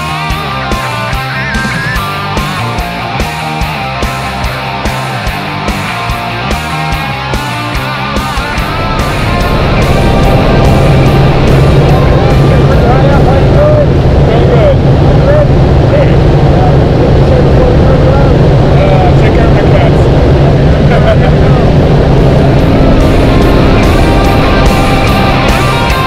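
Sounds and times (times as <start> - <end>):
propeller plane engine drone: 0.0 - 26.0.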